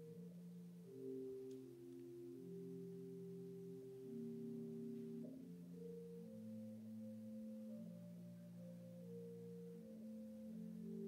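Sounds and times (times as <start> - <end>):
soft organ chords: 0.0 - 11.0.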